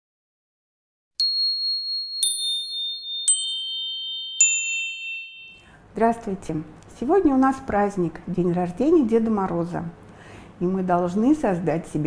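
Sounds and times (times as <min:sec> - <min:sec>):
high bell-like chime notes: 0:01.2 - 0:05.8.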